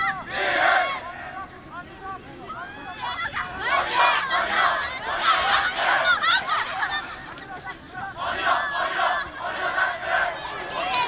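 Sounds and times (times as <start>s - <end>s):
girls shouting: 2.6s - 7.2s, 8.3s - 11.0s.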